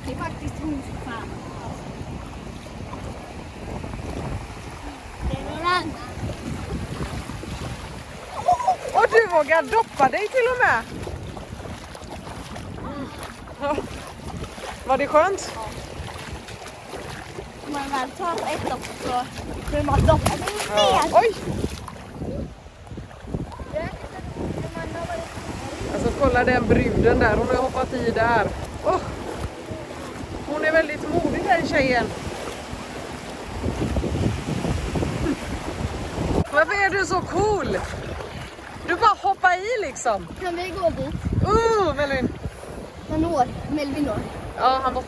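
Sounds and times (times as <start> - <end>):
small waves washing: 0.0 - 45.0
wind noise on microphone: 0.0 - 45.0
voices: 8.3 - 10.9, 17.6 - 21.6, 23.5 - 32.2, 36.4 - 38.0.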